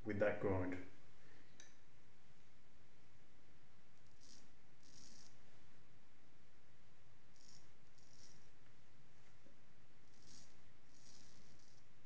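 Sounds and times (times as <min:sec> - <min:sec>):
razor scraping stubble: 0:04.1 - 0:05.3, 0:10.1 - 0:11.8.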